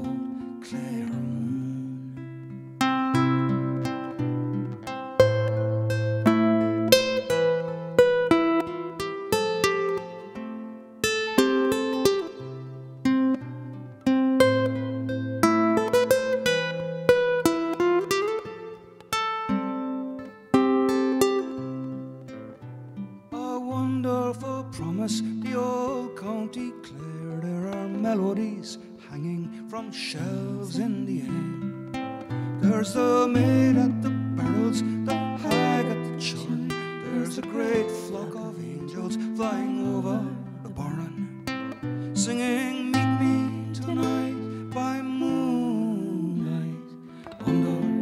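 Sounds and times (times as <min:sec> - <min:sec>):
acoustic guitar playing: 0:00.0 - 0:48.0.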